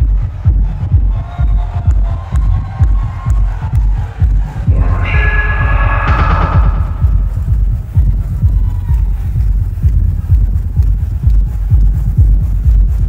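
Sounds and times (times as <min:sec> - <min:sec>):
heavy pulsing bass: 0:04.2 - 0:13.0
electronic dance music: 0:04.6 - 0:08.4.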